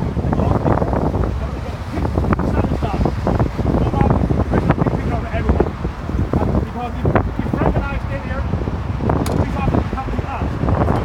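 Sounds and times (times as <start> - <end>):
people talking: 0.0 - 8.5, 9.3 - 11.0
road traffic rumble: 0.0 - 11.0
wind buffeting microphone: 0.0 - 11.0.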